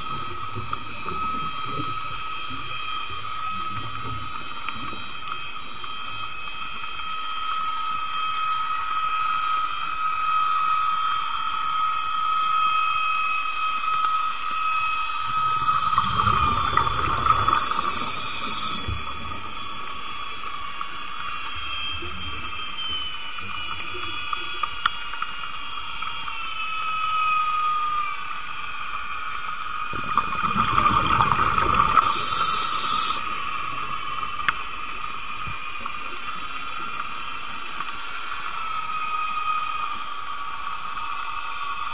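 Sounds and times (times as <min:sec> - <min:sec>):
high-pitched underwater whine: 0:00.0 - 0:41.9
underwater hiss: 0:15.2 - 0:19.6, 0:29.8 - 0:34.3.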